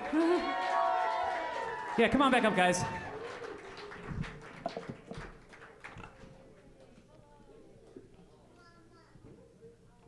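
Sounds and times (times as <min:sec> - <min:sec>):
audience calls: 0:00.0 - 0:05.3
audience clapping: 0:00.0 - 0:06.8.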